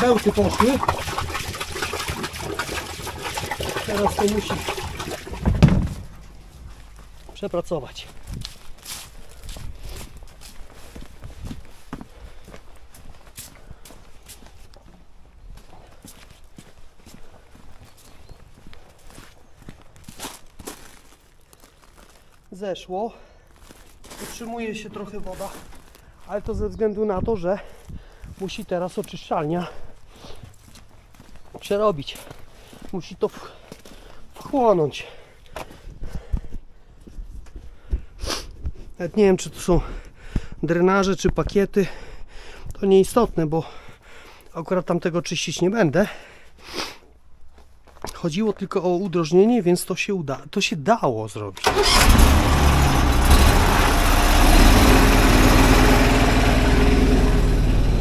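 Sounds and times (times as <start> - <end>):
footsteps on paving stones: 5.3 - 22.5, 23.5 - 26.8, 27.5 - 34.8, 35.4 - 39.0, 47.0 - 48.8
footsteps on leaves and grass: 5.4 - 34.6
short breath-like hiss: 38.2 - 38.6, 46.6 - 47.0.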